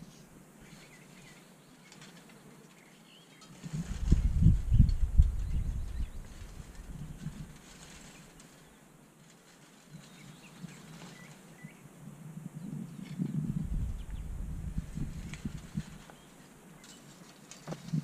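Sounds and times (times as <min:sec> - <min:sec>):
wind buffeting microphone: 0:03.6 - 0:07.8, 0:10.2 - 0:16.4.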